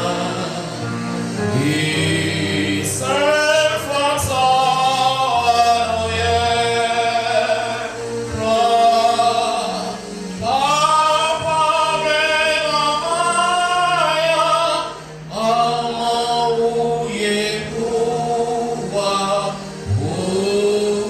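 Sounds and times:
church choir singing: 0.0 - 21.0.

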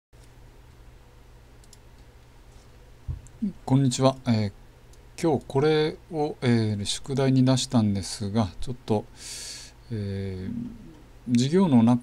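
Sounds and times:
low electrical hum: 0.2 - 12.0
faint computer mouse clicks: 1.6 - 2.1.

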